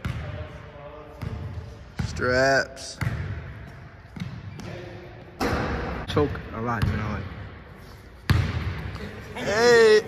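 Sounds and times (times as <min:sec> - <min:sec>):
basketball bouncing on hardwood floor: 0:08.3 - 0:08.9.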